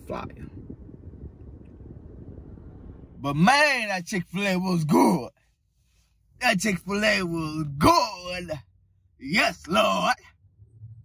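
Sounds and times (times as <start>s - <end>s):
car cabin rumble: 0.0s - 5.1s, 6.7s - 11.0s.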